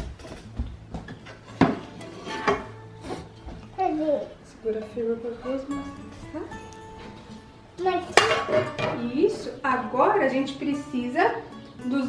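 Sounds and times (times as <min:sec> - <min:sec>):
dinner plates clinking: 0:00.0 - 0:03.7, 0:05.6 - 0:09.5.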